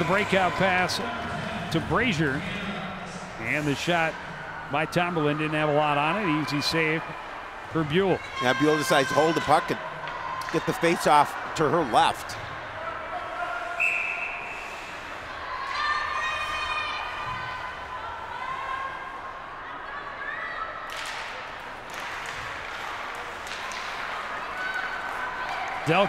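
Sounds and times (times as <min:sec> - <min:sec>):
voices of players and crowd: 0:00.0 - 0:26.0
short whistle: 0:13.8 - 0:14.9.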